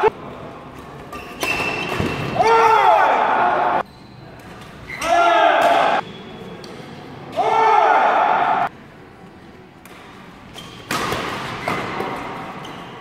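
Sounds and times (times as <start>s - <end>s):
shoes squeaking on court: 0.8s - 2.4s, 10.4s - 13.0s
people shouting: 2.4s - 3.8s, 5.0s - 6.0s, 7.4s - 8.7s.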